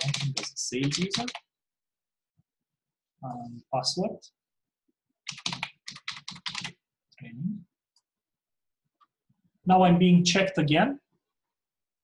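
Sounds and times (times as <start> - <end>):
keyboard typing: 0.0 - 1.5, 5.2 - 6.8.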